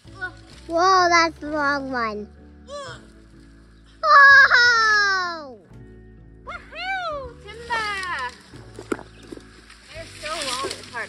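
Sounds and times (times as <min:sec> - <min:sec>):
sharp snaps of branches: 0:00.0 - 0:01.1, 0:07.5 - 0:11.0
brush rustling: 0:00.0 - 0:04.0, 0:07.2 - 0:11.0
background music: 0:00.0 - 0:11.0.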